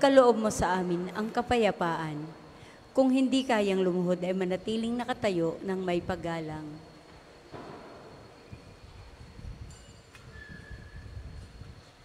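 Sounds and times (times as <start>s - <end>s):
low rumbling room noise: 0.0s - 12.0s.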